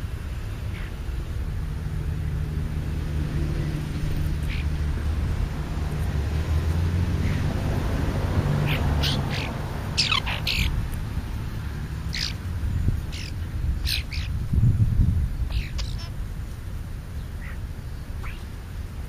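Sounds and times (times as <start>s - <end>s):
small birds chirping: 0.0s - 1.4s, 2.1s - 7.7s, 8.4s - 19.0s.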